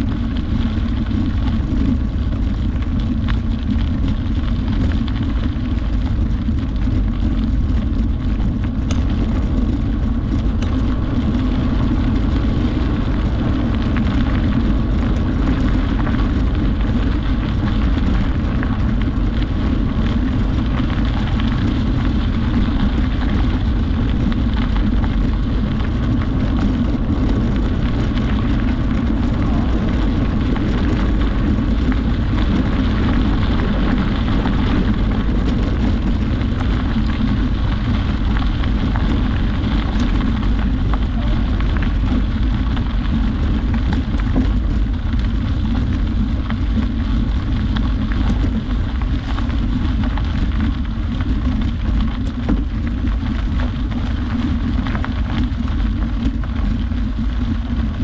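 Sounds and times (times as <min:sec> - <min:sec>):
bicycle tyres crunching on gravel: 0:00.0 - 0:58.0
wind rumble on microphone: 0:00.0 - 0:58.0.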